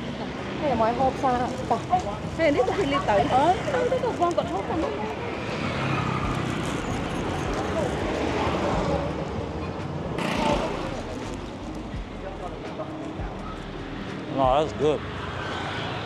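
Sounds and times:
motorbike and car traffic: 0:00.0 - 0:16.0
people talking: 0:00.6 - 0:05.2.

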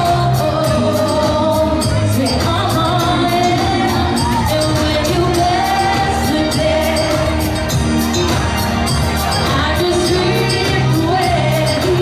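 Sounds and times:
woman singing through a pa: 0:00.0 - 0:07.5, 0:09.4 - 0:12.0
dance backing track: 0:00.0 - 0:12.0.

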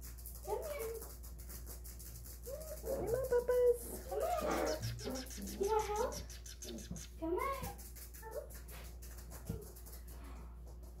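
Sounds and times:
puppies whining and squeaking: 0:02.6 - 0:07.3.

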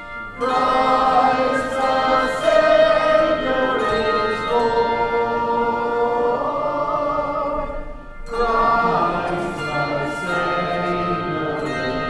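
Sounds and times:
handbell choir ringing chords: 0:00.0 - 0:12.0.

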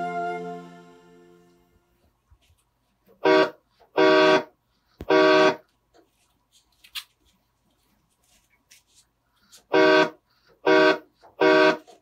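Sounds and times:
electronic train horn blasts: 0:00.0 - 0:01.9, 0:09.8 - 0:11.8.

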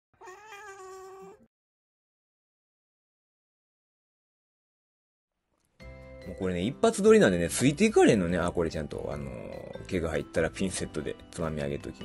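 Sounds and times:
cat meowing: 0:00.2 - 0:01.5.

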